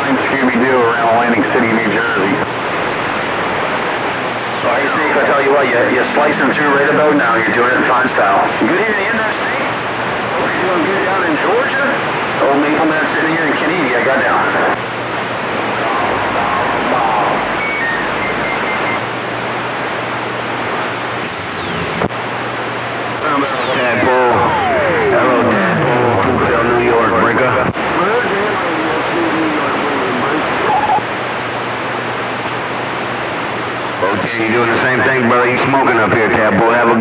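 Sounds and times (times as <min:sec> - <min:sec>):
garbled radio voices: 0:00.0 - 0:03.2, 0:04.4 - 0:19.7, 0:23.2 - 0:31.2, 0:33.9 - 0:37.0
radio static hiss: 0:00.0 - 0:37.0
descending whistle: 0:17.6 - 0:19.0.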